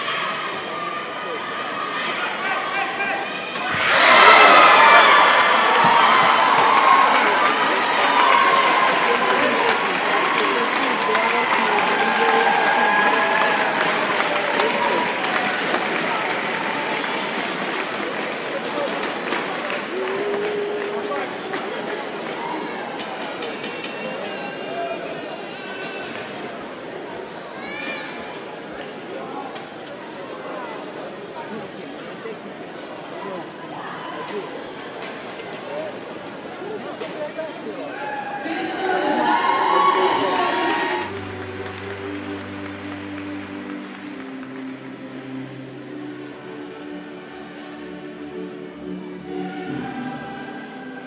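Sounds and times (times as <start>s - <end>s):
crowd shouting and talking: 0.0s - 51.0s.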